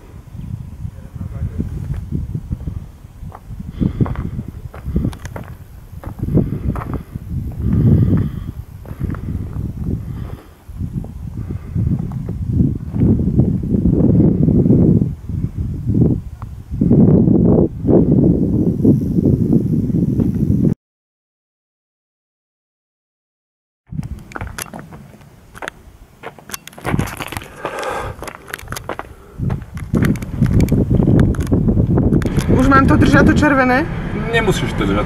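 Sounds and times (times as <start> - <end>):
wind buffeting microphone: 0.0 - 20.8, 23.9 - 35.0.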